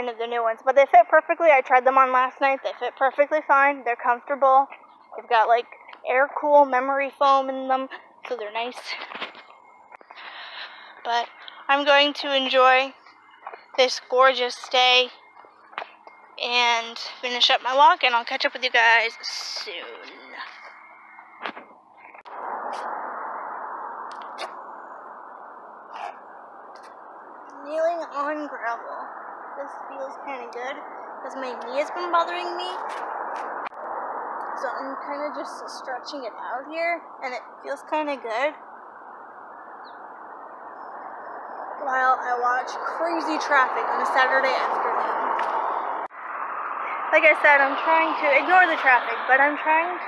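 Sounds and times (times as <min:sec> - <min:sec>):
road traffic going by: 0:00.0 - 0:50.0
road traffic hiss: 0:08.8 - 0:14.9.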